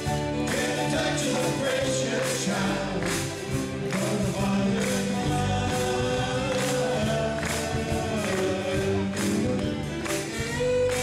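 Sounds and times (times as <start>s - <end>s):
country gospel band playing: 0.0s - 11.0s
person singing: 0.2s - 9.5s.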